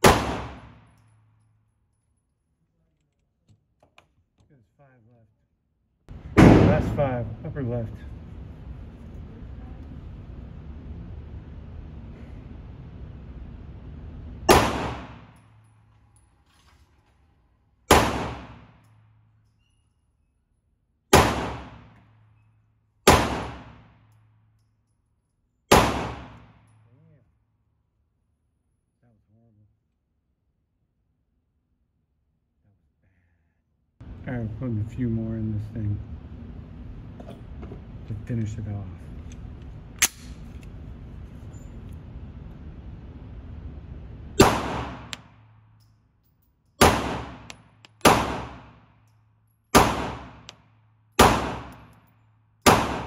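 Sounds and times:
pistol shots with echo: 0.0s - 0.9s, 6.3s - 7.0s, 14.5s - 15.3s, 17.9s - 18.8s, 21.1s - 22.0s, 23.0s - 24.0s, 25.7s - 26.6s, 44.4s - 45.3s, 46.8s - 48.8s, 49.8s - 50.5s, 51.2s - 52.0s, 52.6s - 53.0s
low background noise: 0.0s - 33.2s, 34.0s - 53.0s.

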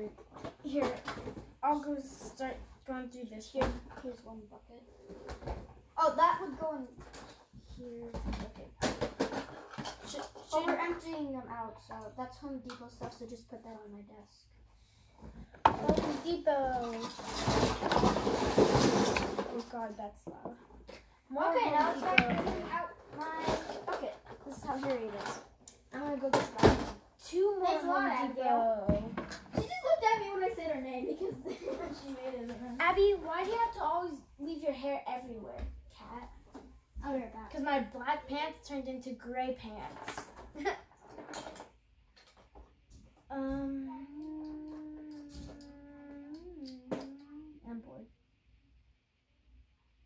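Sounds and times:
girls talking: 0.0s - 4.9s, 5.9s - 8.8s, 10.1s - 14.5s, 15.7s - 17.2s, 21.2s - 40.8s, 43.3s - 48.1s
plastic toys clattering: 7.0s - 11.1s, 15.6s - 19.9s, 21.6s - 27.0s, 39.8s - 42.7s.

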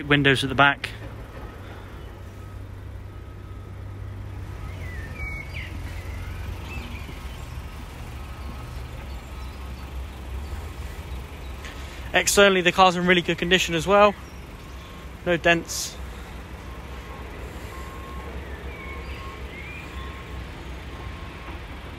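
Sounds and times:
bird chirps: 3.4s - 12.0s, 13.8s - 21.5s.

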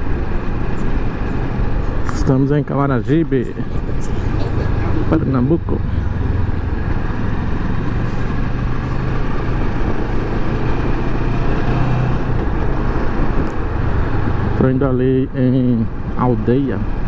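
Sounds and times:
motorcycle engine running: 0.0s - 15.5s
wind and road noise: 0.0s - 17.0s.

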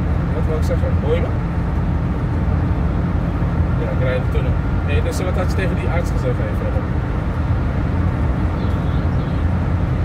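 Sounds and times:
car road and engine drone: 0.0s - 10.0s.

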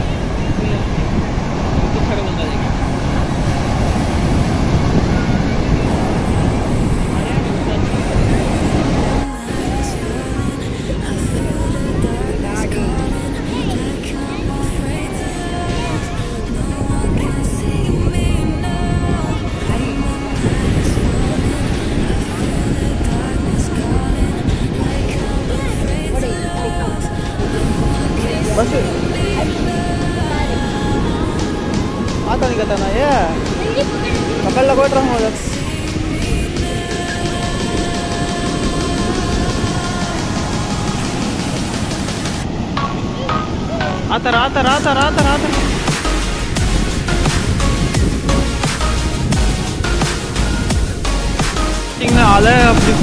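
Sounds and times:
crowd voices: 0.0s - 53.0s
waves breaking on beach: 0.0s - 53.0s
music: 6.7s - 53.0s.

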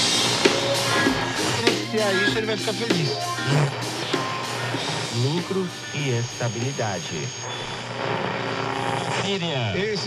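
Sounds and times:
voices talking: 1.1s - 7.5s.

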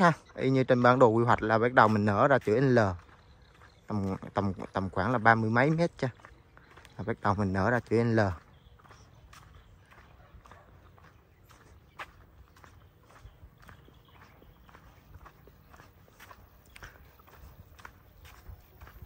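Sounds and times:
footsteps on concrete: 0.0s - 19.0s.

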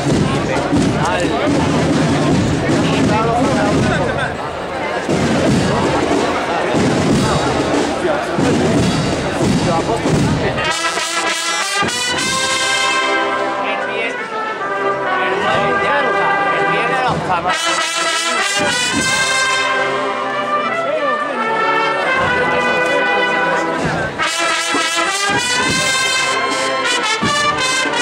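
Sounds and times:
brass band playing a march: 0.0s - 28.0s
crowd noise and voices: 0.0s - 28.0s.

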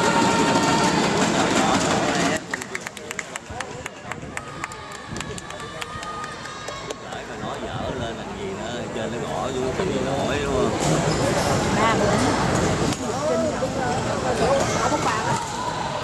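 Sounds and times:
loud crowd voices: 0.0s - 16.0s.

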